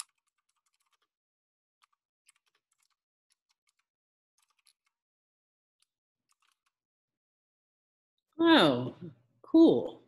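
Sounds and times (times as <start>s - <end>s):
computer keyboard typing: 1.8s - 5.0s.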